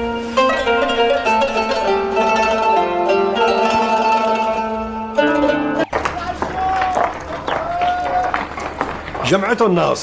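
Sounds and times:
distant voices calling: 5.8 - 10.0.

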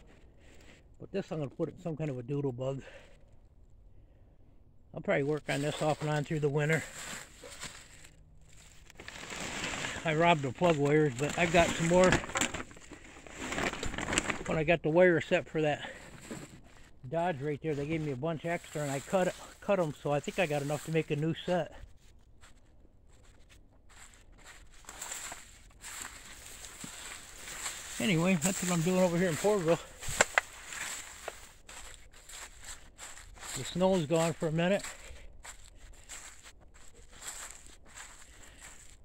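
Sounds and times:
person speaking: 5.0 - 7.2, 9.8 - 12.6, 17.0 - 21.8, 26.6 - 30.4, 33.6 - 35.2
footsteps in dry leaves: 5.4 - 14.7, 17.7 - 39.0.

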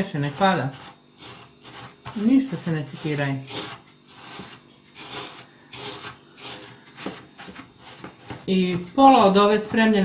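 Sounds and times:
hand rubbing crumbs in plate: 0.0 - 10.0.

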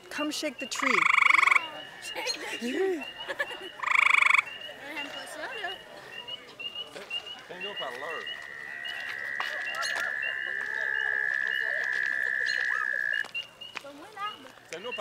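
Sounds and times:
frogs peeping: 0.0 - 15.0
frog trill: 0.6 - 13.3.

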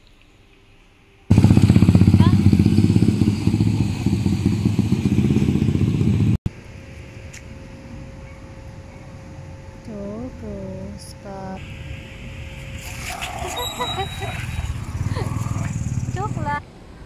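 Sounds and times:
loud engine running: 1.3 - 6.4, 14.4 - 16.6.

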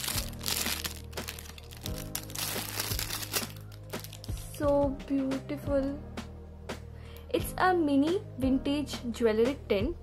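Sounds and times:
plastic bag crinkling: 0.0 - 4.6
background music with held notes: 0.0 - 10.0.

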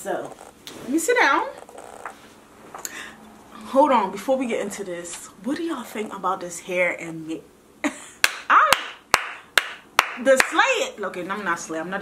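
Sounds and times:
woman clapping hands: 8.2 - 10.6.

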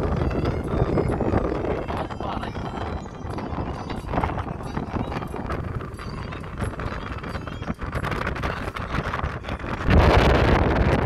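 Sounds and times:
vehicle road rumble: 0.0 - 11.0
voices in vehicle: 0.1 - 9.6.

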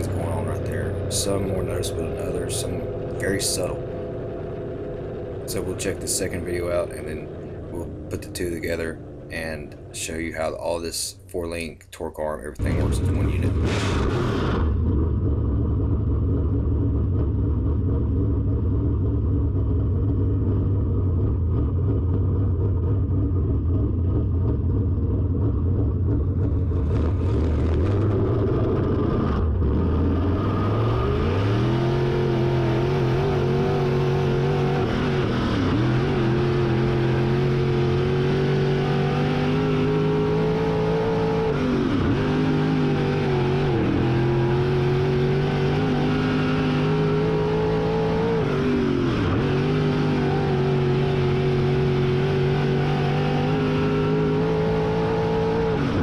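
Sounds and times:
race car engine revving: 0.0 - 10.9, 12.6 - 56.0.

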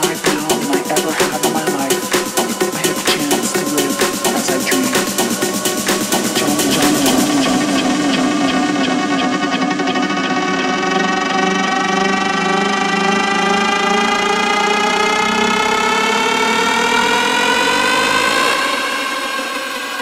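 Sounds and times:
electronic dance drum beat: 0.0 - 11.2
wavering low synth note: 0.0 - 15.1
synth tone rising in pitch: 0.0 - 20.0.

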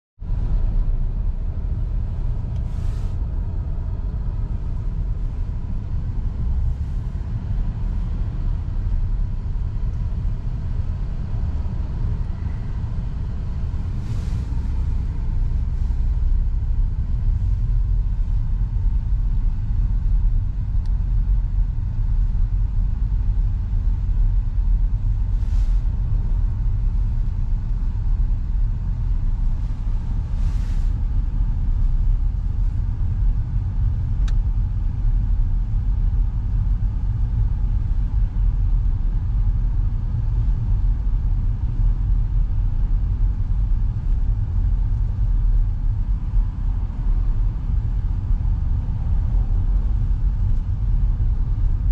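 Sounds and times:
car rumbling inside cabin: 0.2 - 51.9.

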